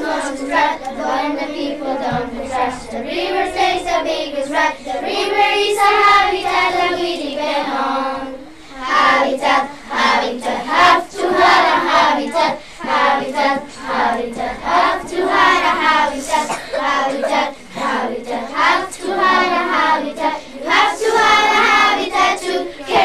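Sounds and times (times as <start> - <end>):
children singing: 0.0 - 23.0.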